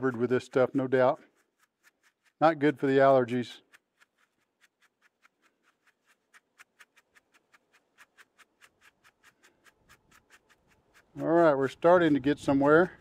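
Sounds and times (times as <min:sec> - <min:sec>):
seeds rattling in a sifter: 0:00.0 - 0:13.0.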